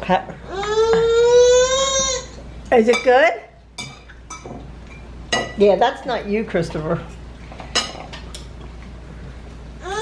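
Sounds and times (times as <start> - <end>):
cutlery clinking against dish: 3.8 - 5.6, 7.6 - 8.5.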